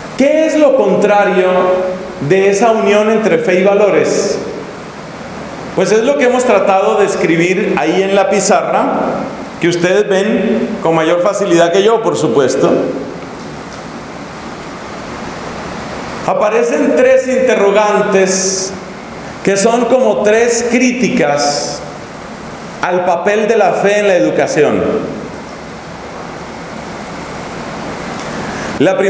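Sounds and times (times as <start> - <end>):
steady background hiss: 0.0 - 29.0
person speaking: 0.1 - 4.7, 5.6 - 13.3, 16.2 - 22.0, 22.8 - 25.4, 28.7 - 29.0.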